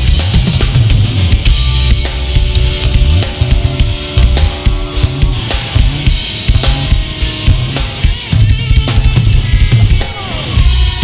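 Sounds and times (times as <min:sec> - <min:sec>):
drum kit: 0:00.0 - 0:11.0
electric guitar: 0:00.0 - 0:11.0.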